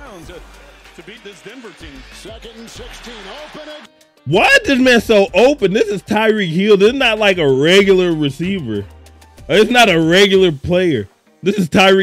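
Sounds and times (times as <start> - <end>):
stadium crowd noise: 0.0 - 4.6
commentator talking: 0.0 - 8.9, 9.5 - 12.0.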